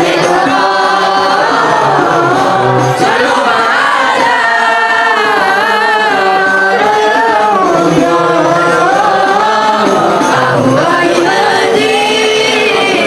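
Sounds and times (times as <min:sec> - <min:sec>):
group of boys singing devotional song: 0:00.0 - 0:13.0.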